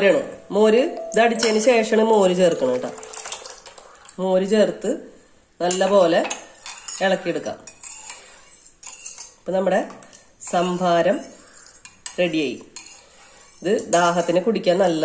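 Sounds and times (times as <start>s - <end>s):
metal spoon scraping glass bowl: 6.3s - 9.4s, 10.5s - 14.6s.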